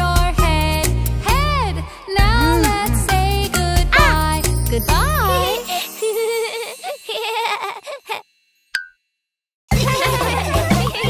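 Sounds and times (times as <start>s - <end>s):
upbeat children's music with bass: 0.0s - 6.0s, 9.7s - 11.0s
cartoon children's music: 0.0s - 8.2s, 9.7s - 11.0s.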